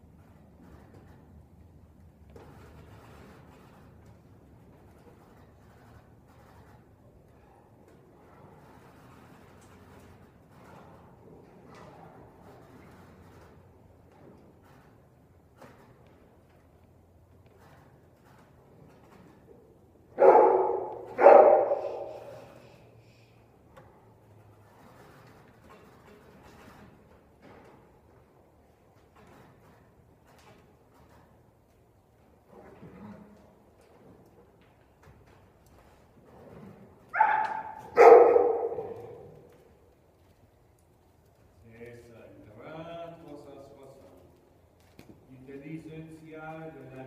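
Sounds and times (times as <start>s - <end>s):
dog barking with echo: 20.2s - 22.4s, 37.2s - 39.2s.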